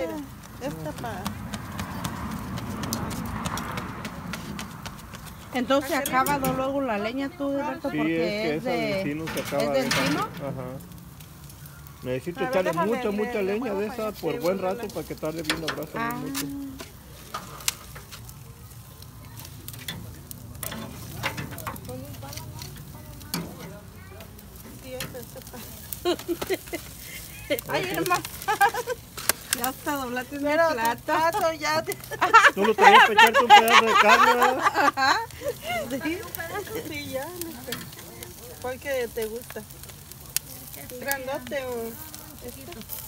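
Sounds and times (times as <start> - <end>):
flame hissing and sizzling: 0.0 - 43.0
wood fire crackling and popping: 0.0 - 43.0.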